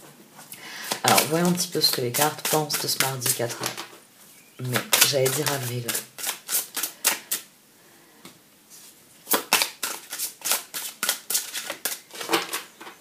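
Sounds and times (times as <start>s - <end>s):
cards clacking while shuffled: 0.8s - 3.9s, 4.7s - 7.4s, 9.3s - 13.0s.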